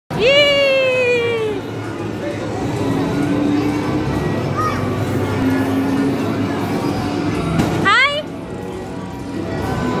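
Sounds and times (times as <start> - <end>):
background hubbub: 0.1 - 10.0.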